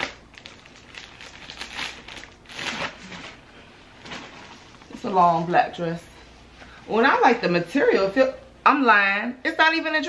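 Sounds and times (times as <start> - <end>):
plastic bag crinkling: 0.0 - 5.1.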